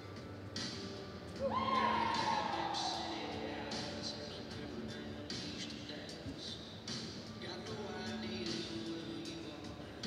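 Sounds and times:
horse whinnying: 1.4 - 3.3.

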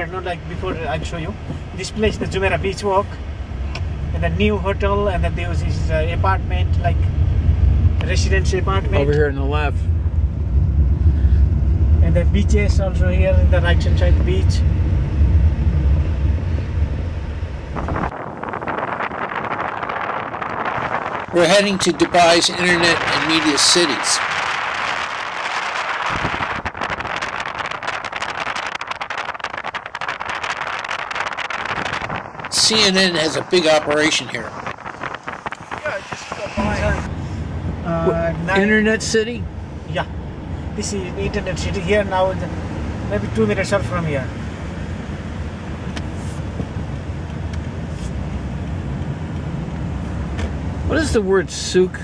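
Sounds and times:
car road and wind noise: 0.0 - 52.0.

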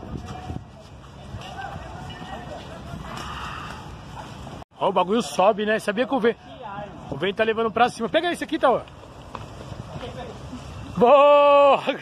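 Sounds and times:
wind rumbling on microphone: 0.0 - 4.6.

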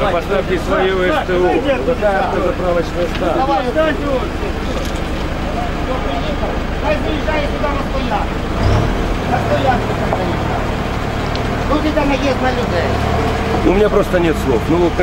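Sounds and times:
truck engine revving: 0.0 - 15.0
voices talking: 0.0 - 15.0.

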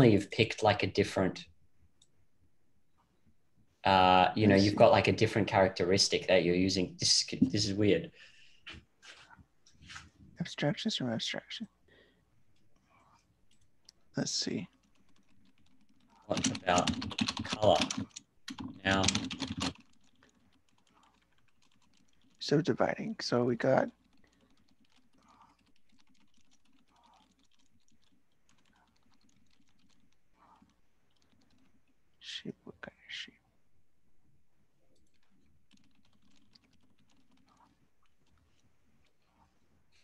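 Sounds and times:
typing on computer keyboard: 14.7 - 22.6, 23.9 - 32.0, 35.0 - 38.6.

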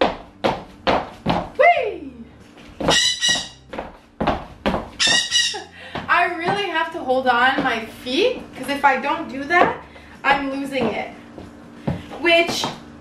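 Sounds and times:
high-heel footsteps on hardwood: 0.0 - 1.6, 2.4 - 13.0.

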